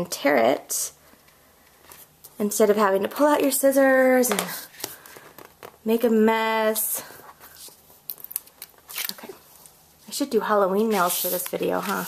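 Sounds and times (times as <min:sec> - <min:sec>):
adhesive tape pulled and torn: 0:08.1 - 0:09.3.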